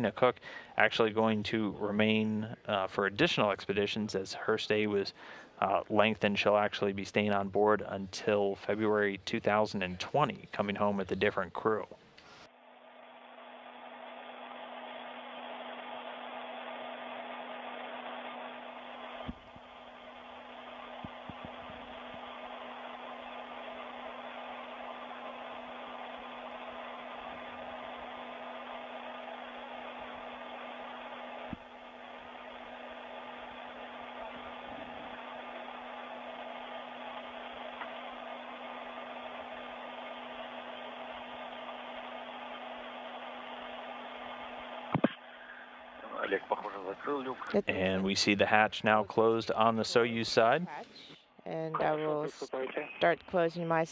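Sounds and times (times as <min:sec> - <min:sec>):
constant low hum: 0:00.0 - 0:53.9
ventilation air rushing: 0:13.1 - 0:51.1.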